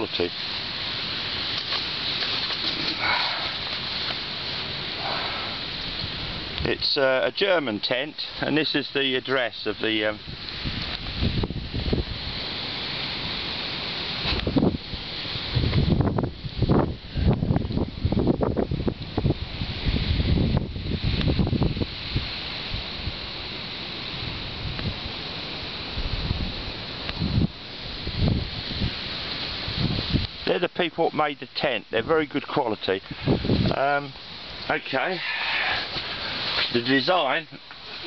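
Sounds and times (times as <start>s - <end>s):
steady rushing hiss: 0.0s - 38.0s
wind buffeting microphone: 0.8s - 7.6s, 9.4s - 30.5s, 32.9s - 37.3s.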